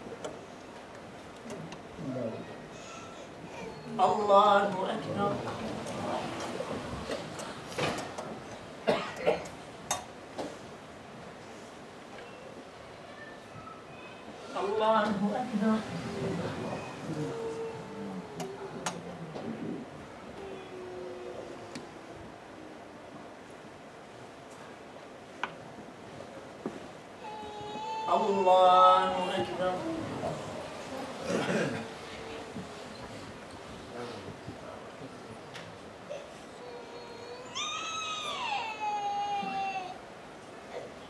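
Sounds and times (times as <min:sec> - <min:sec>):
faint low murmur: 0:00.0 - 0:28.5, 0:29.1 - 0:41.0
faint low background hum: 0:00.0 - 0:41.0.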